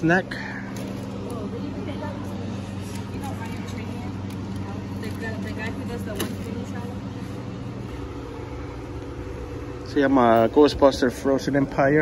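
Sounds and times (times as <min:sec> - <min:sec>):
low mechanical hum: 0:00.0 - 0:12.0
quiet voices talking: 0:00.0 - 0:12.0.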